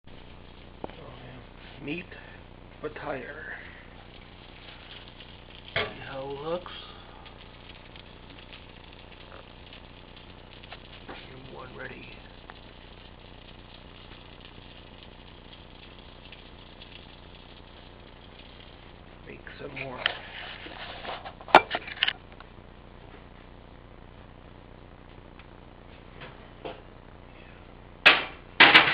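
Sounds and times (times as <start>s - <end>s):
food crackling and sizzling: 0.1s - 27.3s
low steady oven hum: 0.1s - 28.9s.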